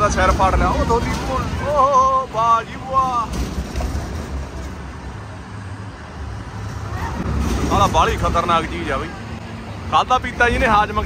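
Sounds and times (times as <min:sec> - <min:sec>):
fairground noise: 0:00.0 - 0:11.0
swing ride mechanical rumble: 0:00.0 - 0:11.0.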